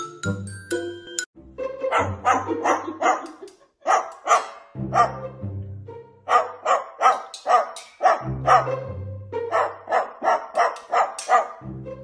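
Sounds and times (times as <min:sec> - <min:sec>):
cockatoo imitating dog barks: 0:01.9 - 0:05.2, 0:06.3 - 0:08.8, 0:09.5 - 0:11.6.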